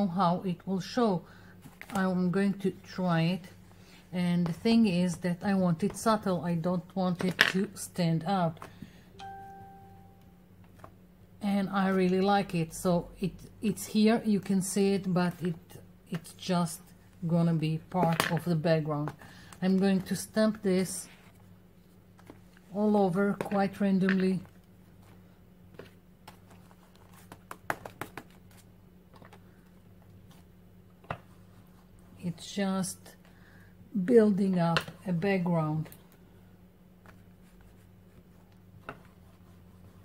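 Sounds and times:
faint low hum: 0:00.0 - 0:40.0
soft ding: 0:09.2 - 0:10.3.

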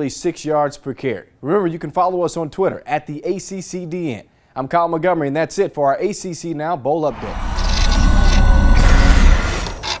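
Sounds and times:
loud noisy whoosh: 0:07.1 - 0:10.0.

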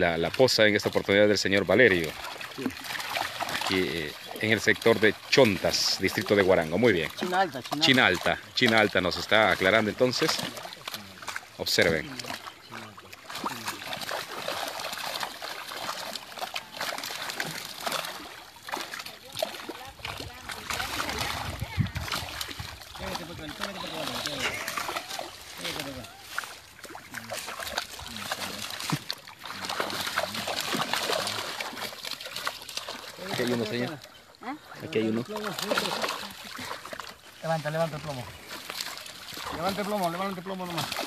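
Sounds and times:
fish splashing in shallow water: 0:00.0 - 0:41.0.

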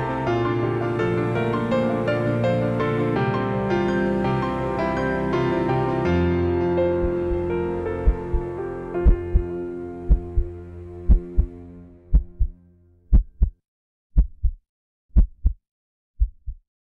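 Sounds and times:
sustained music: 0:00.0 - 0:12.9
heartbeat thumps: 0:07.0 - 0:07.4, 0:08.0 - 0:09.5, 0:10.1 - 0:10.5, 0:11.1 - 0:11.5, 0:12.1 - 0:13.6, 0:14.2 - 0:15.6, 0:16.2 - 0:16.6.

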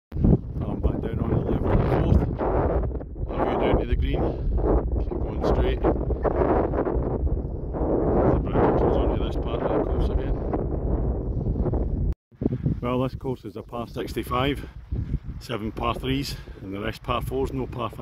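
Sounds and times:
wind buffeting microphone: 0:00.1 - 0:18.0.

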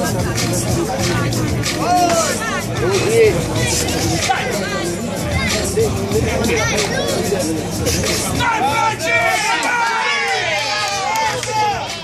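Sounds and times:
crowd voices: 0:00.0 - 0:12.0
people calling out: 0:01.8 - 0:12.0.

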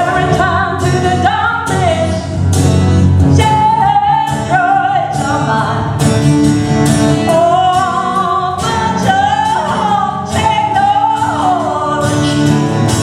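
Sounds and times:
woman singing into a microphone: 0:00.0 - 0:02.5, 0:03.1 - 0:13.0.

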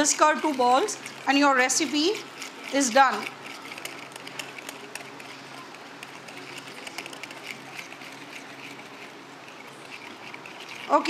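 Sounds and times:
whisk clicking and scraping in bowl: 0:00.0 - 0:11.0.

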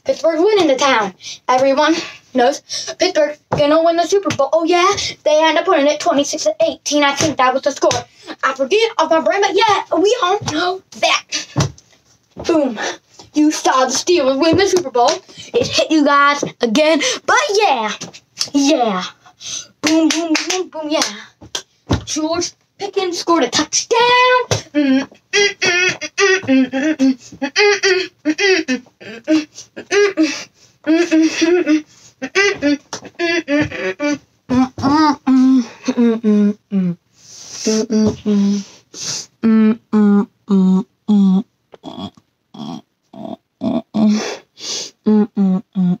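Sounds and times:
child singing wordless tune: 0:00.0 - 0:11.5, 0:12.4 - 0:29.5, 0:30.9 - 0:35.7
breathy vocal percussion: 0:24.5 - 0:37.0.

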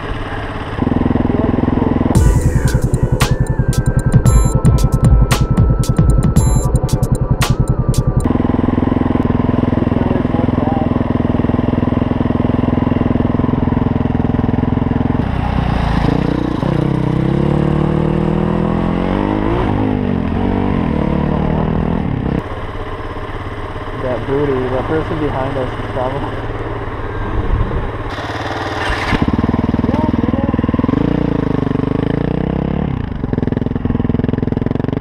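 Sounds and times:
motorcycle engine revving: 0:00.0 - 0:35.0.

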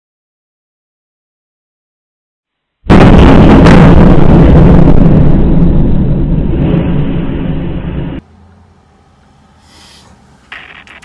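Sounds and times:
distorted rocket blast rumbling: 0:02.9 - 0:08.2.

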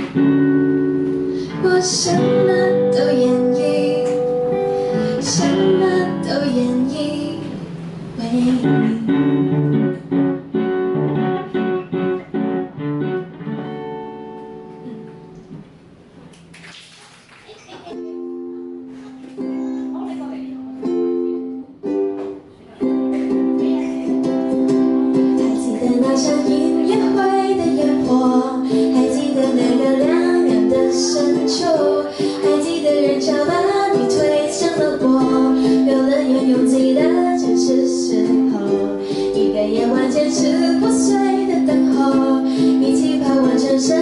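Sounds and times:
ukulele and guitar strumming: 0:00.0 - 0:16.6, 0:17.8 - 0:44.0
woman singing: 0:01.4 - 0:09.5, 0:23.1 - 0:44.0.

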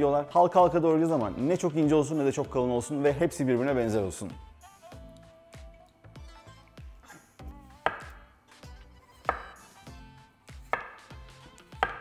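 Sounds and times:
light background music: 0:00.0 - 0:12.0
knife knocking on wooden board: 0:07.8 - 0:08.2, 0:09.3 - 0:09.6, 0:10.6 - 0:11.2, 0:11.8 - 0:12.0.

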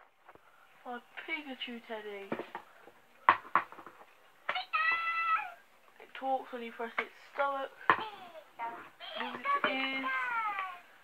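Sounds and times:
high-pitched toy voice cry: 0:04.5 - 0:05.6.

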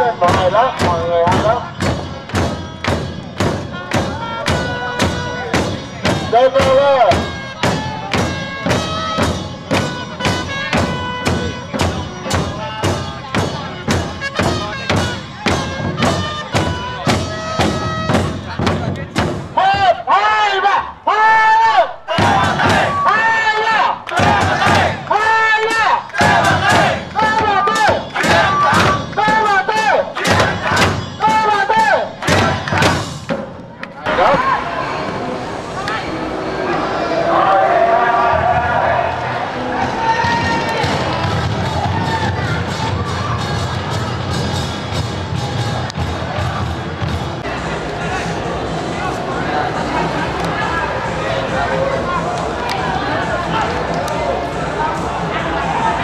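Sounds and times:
drums beaten with sticks: 0:00.0 - 0:20.1, 0:22.1 - 0:23.3, 0:24.1 - 0:25.3, 0:26.0 - 0:34.4, 0:40.1 - 0:56.0
crowd noise: 0:00.0 - 0:56.0
held horn notes: 0:02.6 - 0:18.6
crowd chanting: 0:19.6 - 0:56.0.

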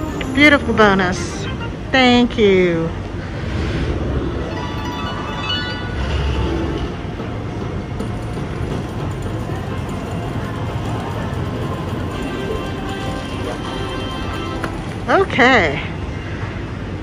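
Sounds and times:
slot machine game music: 0:00.0 - 0:02.0, 0:04.4 - 0:06.7, 0:09.2 - 0:15.1.

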